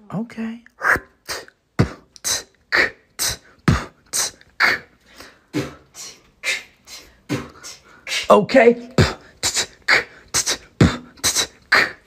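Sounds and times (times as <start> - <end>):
vocal beatboxing: 0.7 - 12.0.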